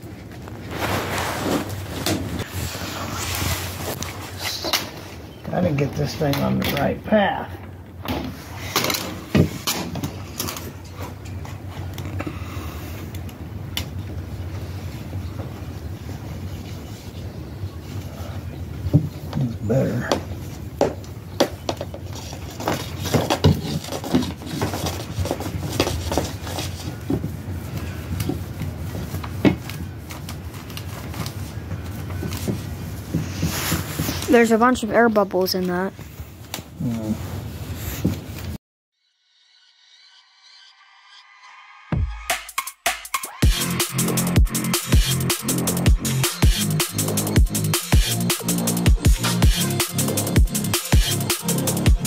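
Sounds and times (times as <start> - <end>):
vinyl tape rustling and crinkling: 0.0 - 7.0, 8.3 - 12.2, 20.5 - 34.9.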